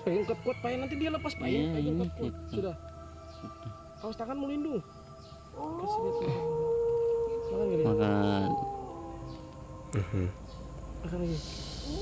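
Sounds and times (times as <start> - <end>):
steady low drone: 0.0 - 12.0
wailing cry: 5.5 - 9.6.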